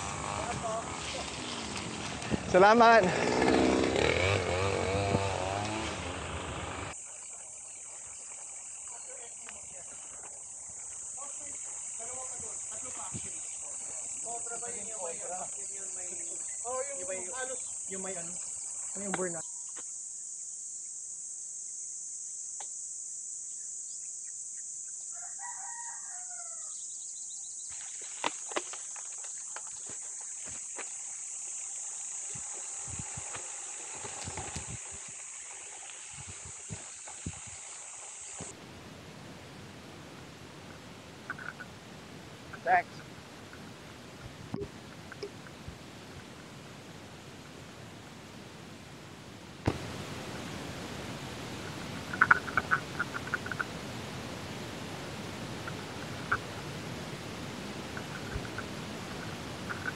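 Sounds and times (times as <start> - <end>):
high-pitched insect drone: 2.5 - 38.6, 49.9 - 59.9
rooster crowing: 25.1 - 26.8.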